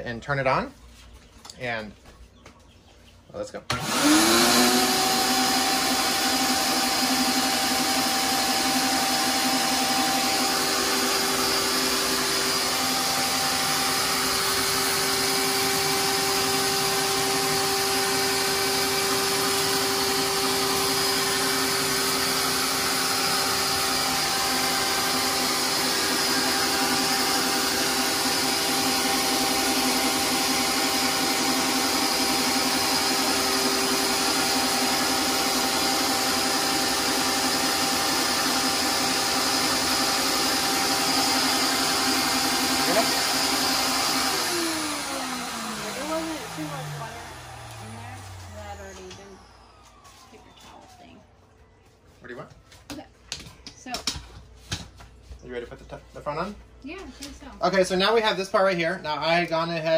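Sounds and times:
shop vacuum humming and whining: 3.7 - 52.1, 56.2 - 59.9.

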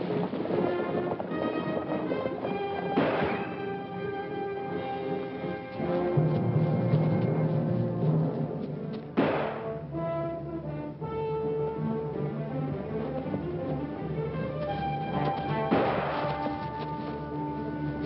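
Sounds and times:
orchestral music with brass: 0.0 - 18.0
sharp crash: 15.7 - 16.5.

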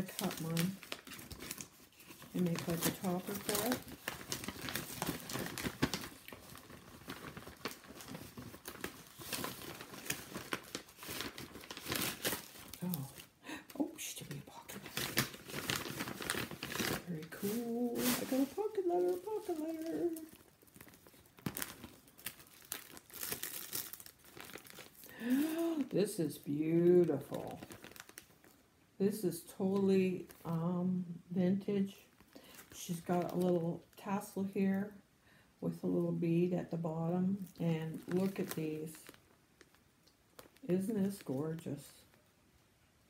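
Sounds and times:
paper crinkling and rustling: 0.0 - 13.3, 14.2 - 28.6, 37.4 - 41.4.

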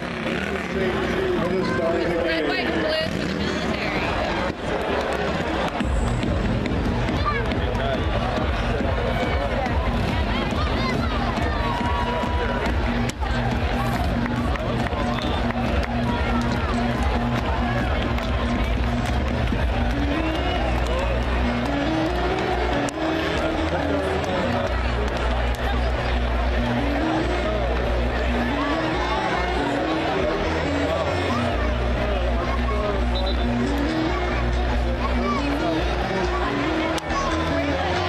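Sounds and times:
crowd chattering: 0.0 - 38.0
music over loudspeakers: 0.0 - 38.0.

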